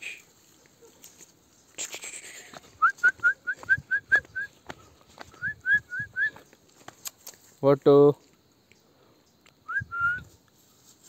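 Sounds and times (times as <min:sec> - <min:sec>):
short high whistles: 0:09.7 - 0:10.4.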